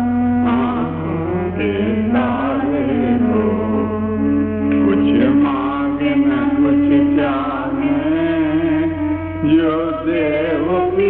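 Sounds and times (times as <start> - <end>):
devotional melody with sliding ornaments: 0.0 - 11.0
steady held drone: 0.0 - 11.0.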